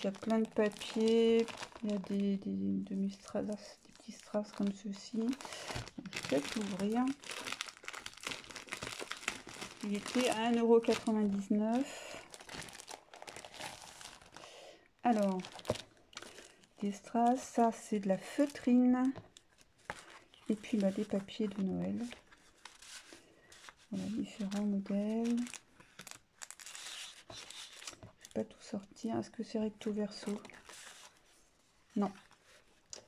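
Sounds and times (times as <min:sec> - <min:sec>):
plastic packaging crinkling: 0:00.0 - 0:28.5, 0:29.8 - 0:31.2
paper sheets rustling: 0:19.8 - 0:28.1.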